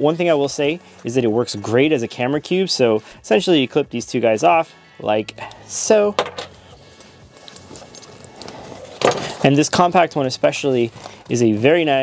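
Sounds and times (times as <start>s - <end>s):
bag strap rustling: 6.5s - 9.6s, 10.8s - 11.4s.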